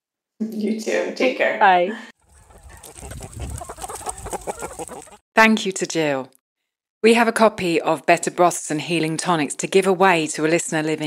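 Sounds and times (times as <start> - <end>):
poultry clucking: 2.2 - 5.2.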